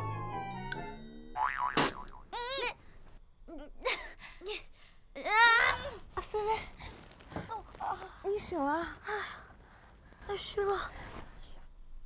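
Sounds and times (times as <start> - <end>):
comic boing sound effect: 1.4 - 2.3.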